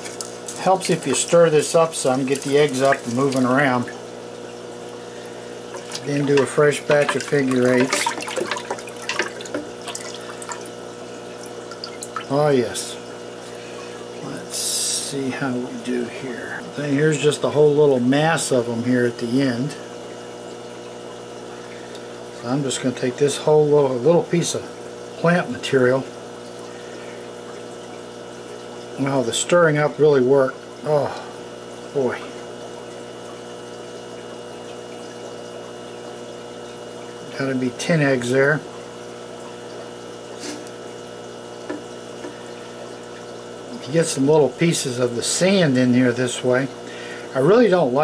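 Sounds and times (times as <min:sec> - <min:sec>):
water splash in tank: 0:00.0 - 0:12.3
aquarium pump humming: 0:00.0 - 0:48.0.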